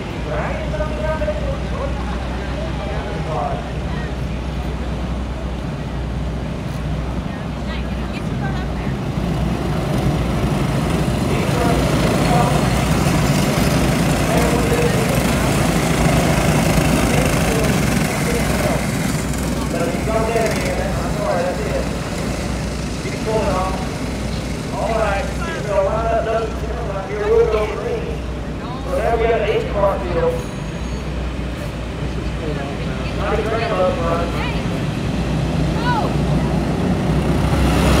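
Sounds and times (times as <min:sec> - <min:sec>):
voices: 0:00.0 - 0:06.1, 0:07.0 - 0:36.6
kart engines racing: 0:07.7 - 0:38.0.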